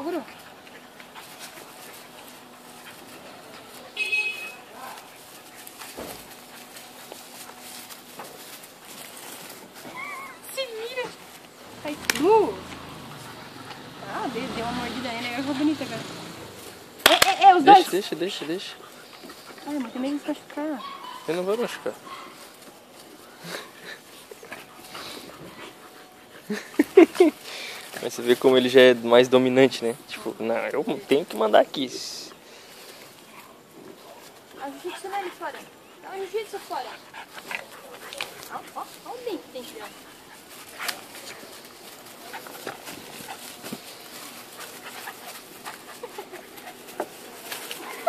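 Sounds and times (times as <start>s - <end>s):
dogs panting: 0.0s - 3.9s, 4.9s - 48.0s
dogs scuffling: 0.0s - 48.0s.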